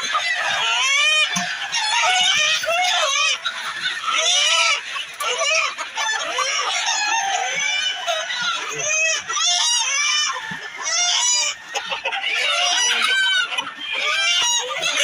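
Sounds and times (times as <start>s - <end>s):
chickens clucking and squawking: 0.0s - 15.0s.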